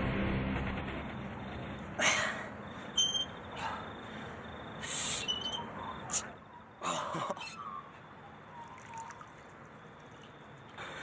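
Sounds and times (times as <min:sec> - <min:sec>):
sharp breaths blown out: 0:02.0 - 0:06.4.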